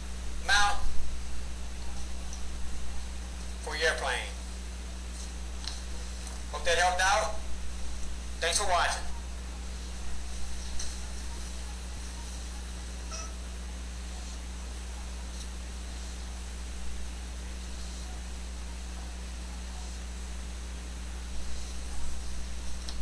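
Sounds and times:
low hum and room noise: 0.0s - 23.0s.

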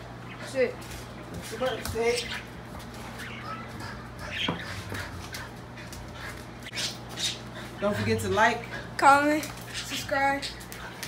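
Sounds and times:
faint pet animal noises: 0.0s - 11.0s
low steady hum: 0.0s - 11.0s.

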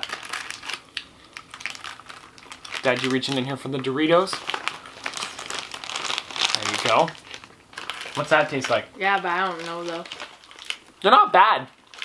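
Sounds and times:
plastic snack packet crinkling: 0.0s - 12.0s.

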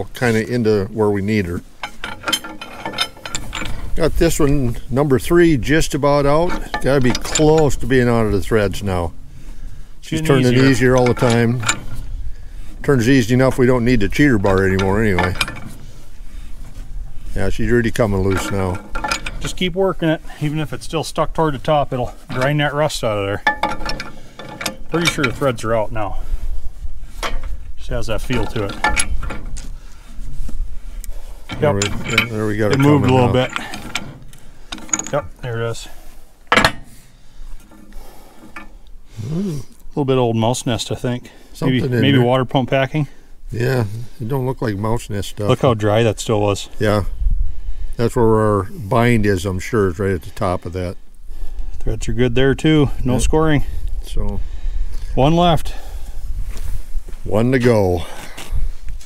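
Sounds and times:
metallic rubbing and scraping: 0.0s - 39.6s.

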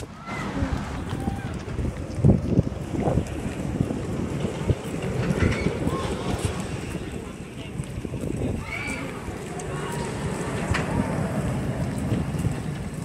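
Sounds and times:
faint voices: 0.0s - 13.0s
wind buffeting microphone: 0.0s - 13.0s.

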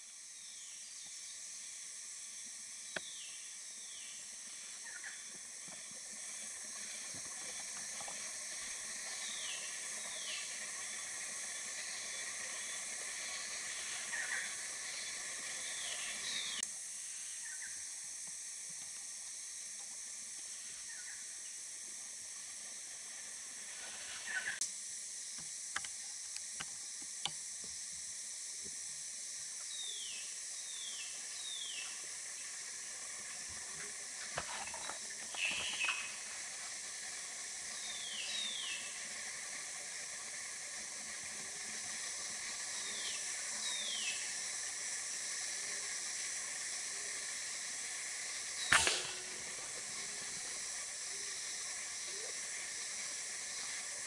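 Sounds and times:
insect chorus drone: 0.0s - 54.0s
sharp crack: 48.7s - 49.8s.

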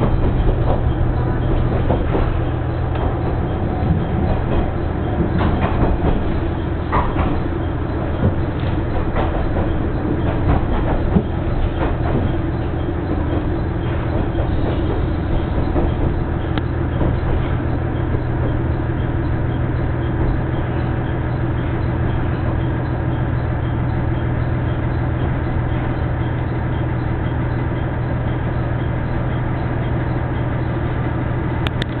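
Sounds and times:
train engine humming: 0.0s - 32.0s.

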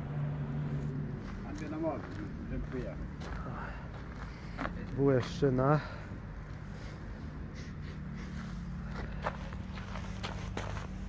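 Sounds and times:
footsteps: 0.8s - 7.0s, 8.1s - 11.0s.

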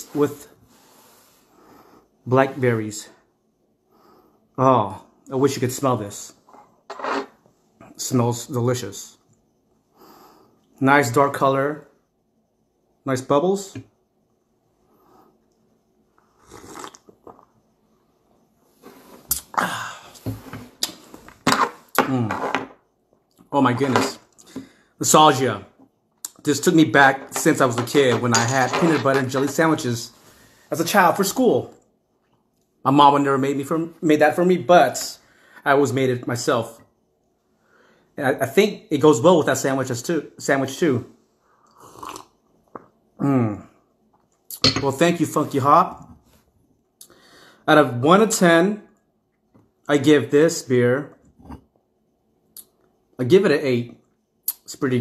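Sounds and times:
faint mouth sounds: 16.2s - 17.6s, 18.9s - 21.1s
person slurping beer: 16.4s - 17.4s, 41.7s - 42.3s.

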